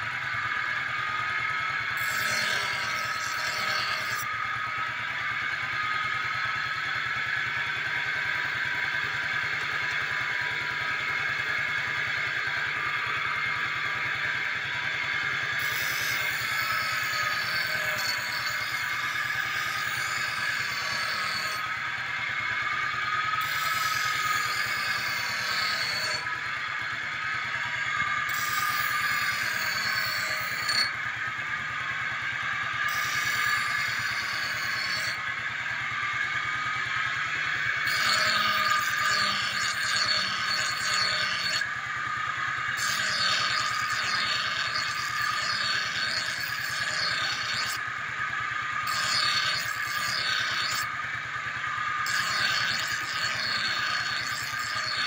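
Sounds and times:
grinding wheel whine: 0:00.0 - 0:55.0
steel blade grinding hiss: 0:02.0 - 0:04.3, 0:15.6 - 0:21.6, 0:23.4 - 0:26.3, 0:28.3 - 0:31.0, 0:32.9 - 0:35.2, 0:37.8 - 0:41.6, 0:42.6 - 0:47.8, 0:48.8 - 0:50.9, 0:52.0 - 0:55.0
motorcycle engine running: 0:04.3 - 0:15.8, 0:21.6 - 0:24.8, 0:30.9 - 0:33.0, 0:35.2 - 0:38.6.

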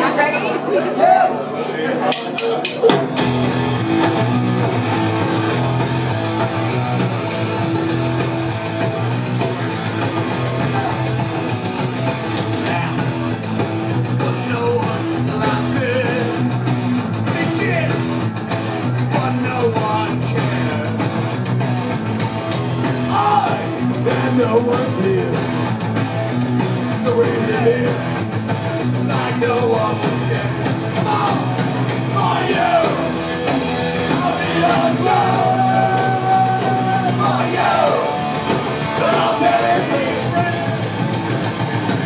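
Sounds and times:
punk rock band playing loud: 0:02.0 - 0:42.0.

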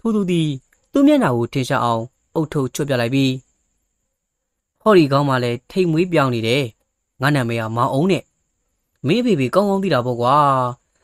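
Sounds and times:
narrator reading aloud: 0:00.0 - 0:03.6, 0:04.8 - 0:11.0.

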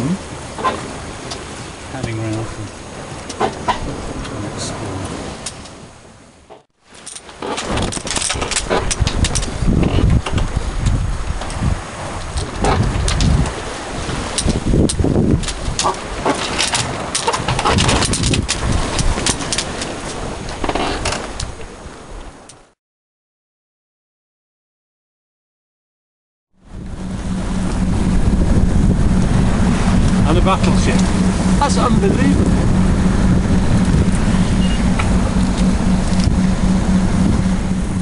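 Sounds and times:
wind buffeting microphone: 0:00.0 - 0:06.6, 0:07.2 - 0:22.7, 0:26.6 - 0:38.0
sea rushing: 0:00.0 - 0:22.8, 0:26.6 - 0:38.0.

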